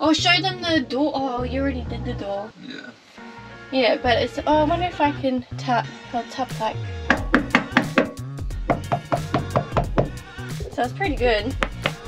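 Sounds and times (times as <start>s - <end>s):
hand knocking on damped panel: 7.1s - 10.2s, 11.5s - 12.0s.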